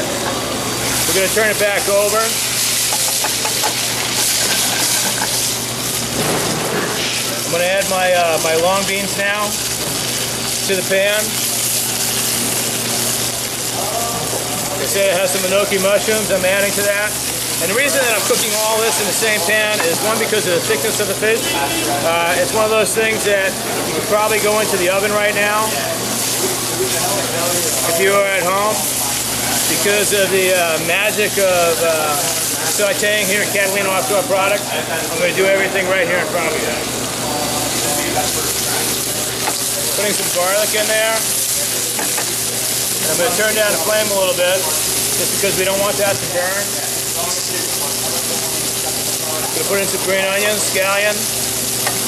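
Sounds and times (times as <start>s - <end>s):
fish and beans sizzling in oil: 0.2s - 35.4s, 36.4s - 52.0s.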